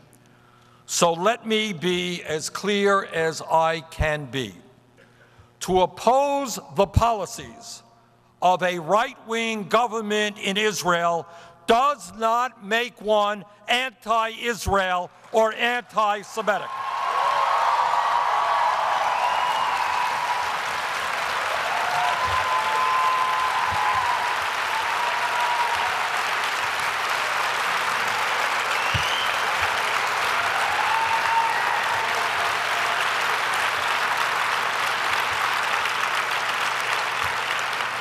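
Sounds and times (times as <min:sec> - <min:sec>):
people cheering: 0:16.5 - 0:38.0
audience applauding: 0:16.6 - 0:38.0.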